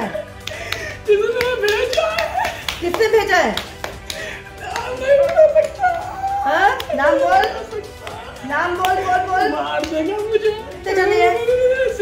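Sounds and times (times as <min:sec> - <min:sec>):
sharp hand claps: 0:00.2 - 0:10.3
person crying out: 0:04.6 - 0:07.1.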